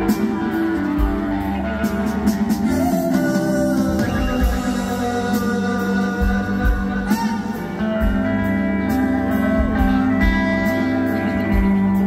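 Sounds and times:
live rock band playing: 0:00.0 - 0:12.0.

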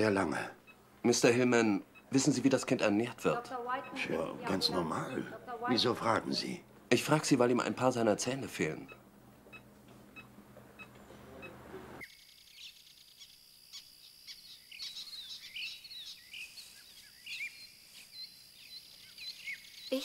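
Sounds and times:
soft regular beeps: 0:00.0 - 0:13.3
songbirds chirping and singing: 0:10.8 - 0:20.0.

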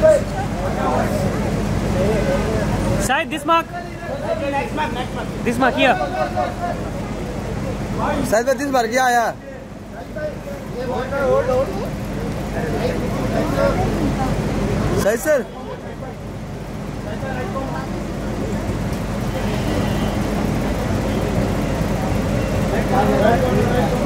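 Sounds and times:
photographers chattering and calling: 0:00.0 - 0:24.0.

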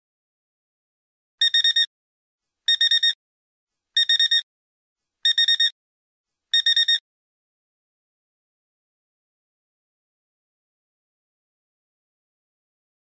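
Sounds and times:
alarm clock beeping: 0:01.4 - 0:01.9, 0:02.7 - 0:03.2, 0:04.0 - 0:04.4, 0:05.3 - 0:05.8, 0:06.6 - 0:07.0.

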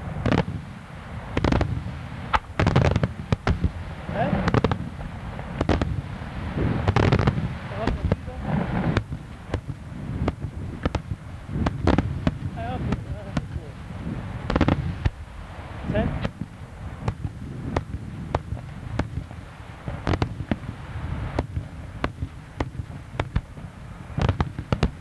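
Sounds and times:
deep rumble: 0:00.0 - 0:25.0
fireworks bursting with sharp bangs: 0:00.0 - 0:25.0.

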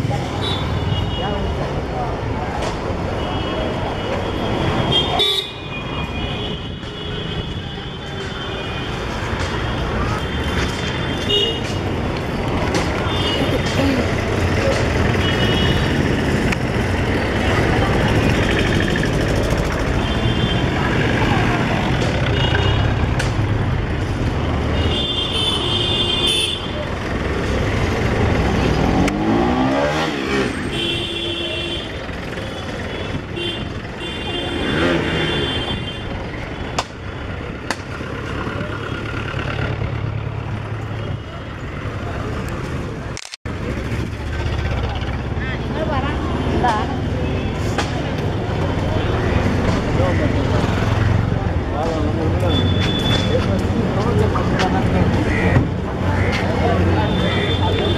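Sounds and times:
traffic engines rumbling: 0:00.0 - 0:57.9
car horns tooting: 0:29.2 - 0:36.2, 0:55.2 - 0:57.9.

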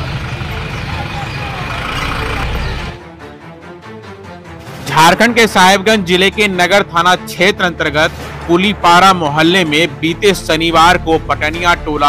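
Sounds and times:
bus engine driving past: 0:00.0 - 0:03.0
crowd voices: 0:00.0 - 0:03.0.

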